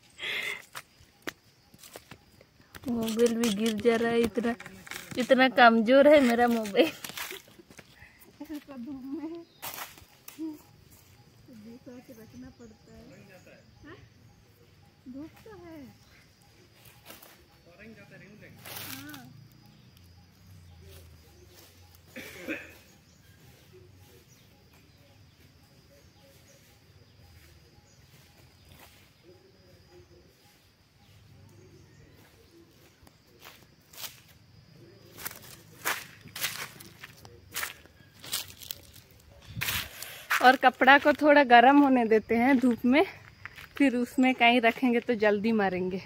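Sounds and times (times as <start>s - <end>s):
footsteps crunching dry leaves: 0.8s - 8.0s, 9.5s - 11.2s, 16.7s - 19.5s, 32.1s - 41.2s.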